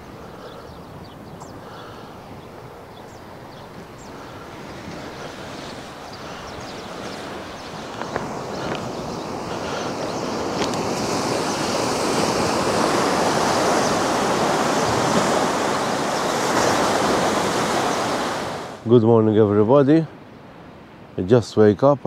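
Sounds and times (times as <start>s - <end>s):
sea waves washing on rocks: 3.7s - 18.8s.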